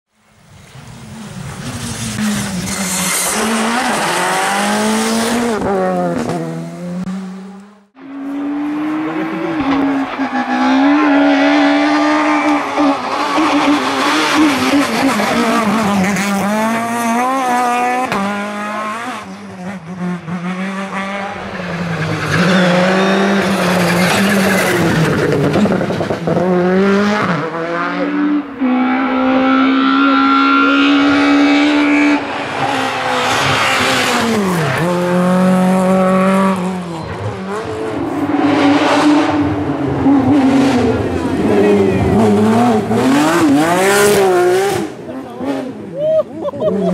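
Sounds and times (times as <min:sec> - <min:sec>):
rally car engines revving: 0:00.5 - 0:46.9.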